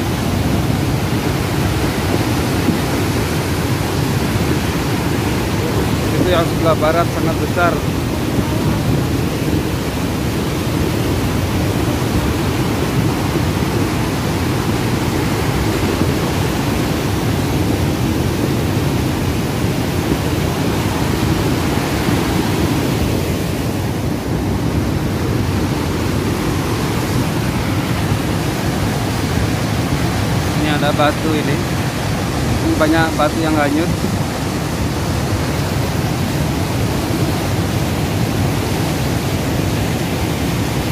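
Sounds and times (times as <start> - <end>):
mud flood rushing: 0.0 - 40.9.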